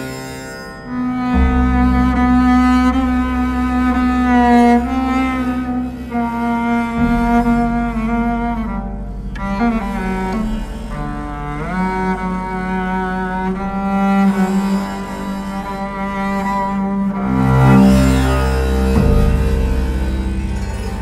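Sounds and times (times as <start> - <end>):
bowed bass sustained notes: 0.0 - 21.0.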